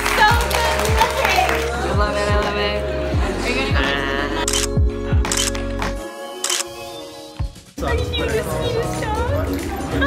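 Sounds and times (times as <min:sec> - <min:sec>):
background music with a beat: 0:00.0 - 0:10.0
camera shutter clicks: 0:04.5 - 0:04.7, 0:05.3 - 0:05.6, 0:06.4 - 0:06.7.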